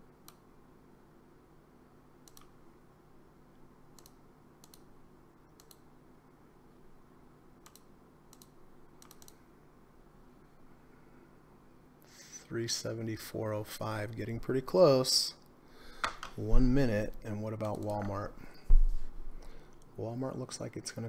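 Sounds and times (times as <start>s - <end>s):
low steady hum: 0.0s - 21.0s
computer mouse clicks: 0.2s - 0.4s, 2.2s - 2.6s, 3.9s - 4.9s, 5.5s - 5.9s, 7.6s - 9.4s.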